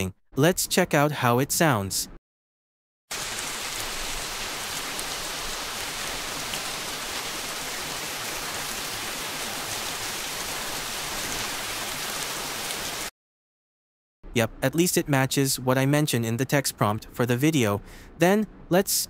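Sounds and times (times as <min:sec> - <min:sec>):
rain hiss: 0:03.1 - 0:13.1.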